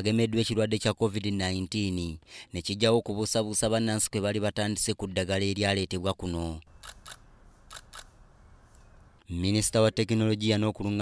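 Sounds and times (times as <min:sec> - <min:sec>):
low background hiss: 0:06.2 - 0:11.0.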